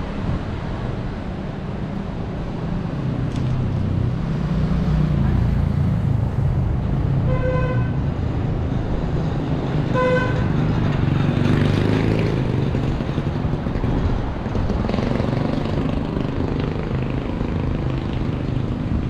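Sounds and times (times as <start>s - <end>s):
street traffic rumble: 0.0s - 19.0s
vehicle horn honks: 7.3s - 8.0s, 10.0s - 10.5s.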